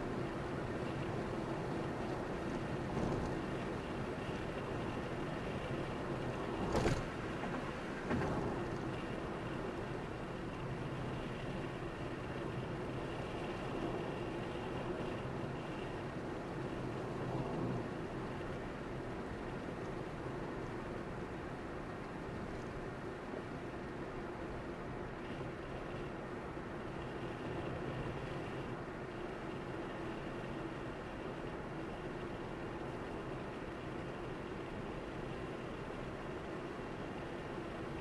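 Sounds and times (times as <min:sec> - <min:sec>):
car tyre and engine noise: 0:00.0 - 0:38.0.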